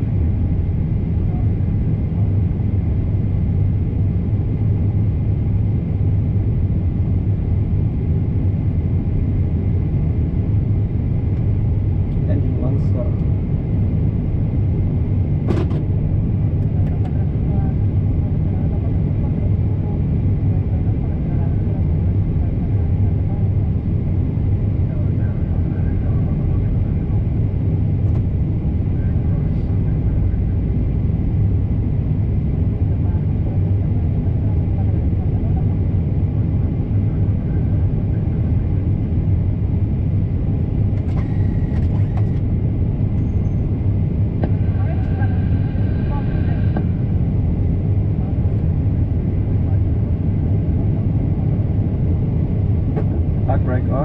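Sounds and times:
aircraft engines idling: 0:00.0 - 0:54.0.

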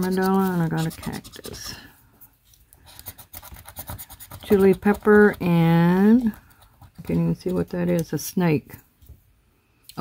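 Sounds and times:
scratching lottery ticket: 0:00.0 - 0:01.9, 0:02.8 - 0:08.1.

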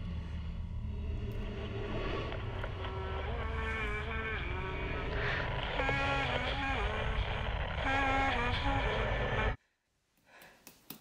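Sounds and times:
deep rumbling drone: 0:00.0 - 0:09.6.

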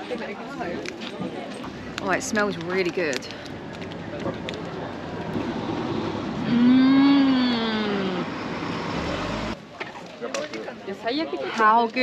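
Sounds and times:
street noise: 0:00.0 - 0:12.0
woman humming mmm while chewing: 0:06.4 - 0:08.3.

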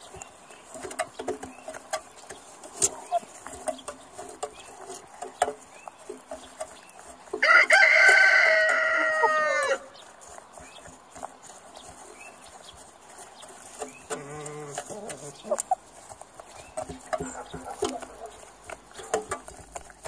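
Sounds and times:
rooster crowing: 0:07.4 - 0:09.9.

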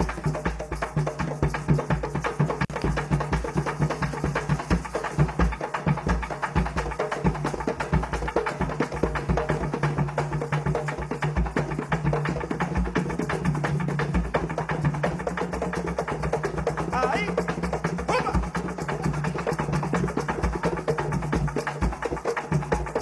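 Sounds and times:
hand drums playing fast rhythm: 0:00.0 - 0:23.0
maracas shaking: 0:00.0 - 0:23.0.

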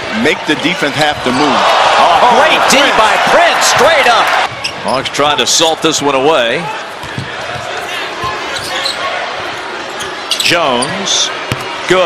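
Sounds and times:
arena crowd murmur: 0:00.0 - 0:12.0
basketball bouncing on hardwood: 0:07.0 - 0:07.7.

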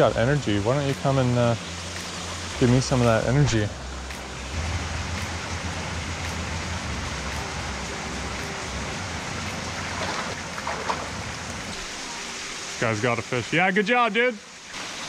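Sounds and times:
water rushing over rocks: 0:00.0 - 0:15.0
low rumble: 0:01.5 - 0:11.8.

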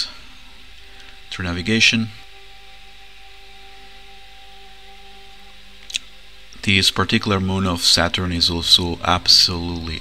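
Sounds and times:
ambient music drone: 0:00.0 - 0:10.0.

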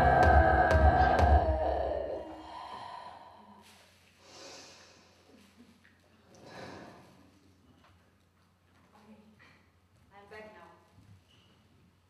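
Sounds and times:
music: 0:00.0 - 0:01.8
breathy exhale: 0:01.8 - 0:05.3, 0:06.4 - 0:07.2.

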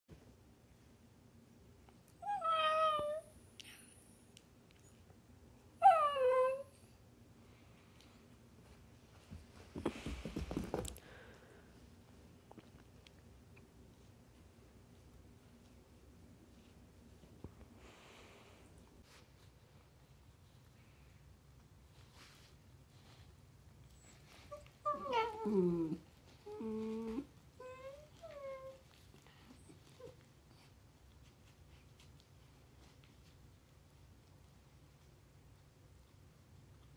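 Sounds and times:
puppy whining: 0:02.2 - 0:03.4, 0:05.7 - 0:07.0, 0:23.8 - 0:30.8.

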